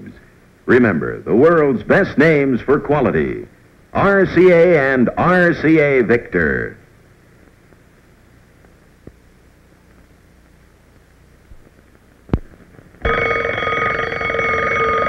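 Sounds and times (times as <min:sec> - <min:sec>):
faint hiss: 0:00.0 - 0:13.1
alarm clock bells ringing: 0:13.1 - 0:15.0.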